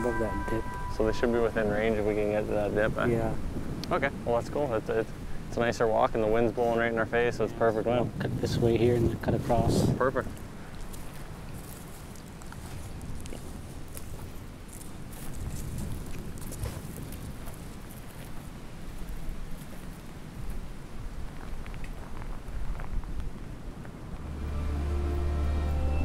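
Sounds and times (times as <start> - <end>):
low droning music: 0.0 - 2.6, 24.2 - 26.0
wind noise on microphone: 0.0 - 25.3
light crackles: 10.0 - 24.3.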